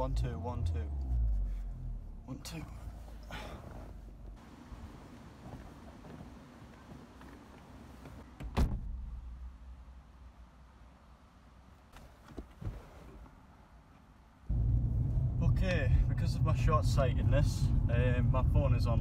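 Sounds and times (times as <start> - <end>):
loud low rumble: 14.5 - 19.0.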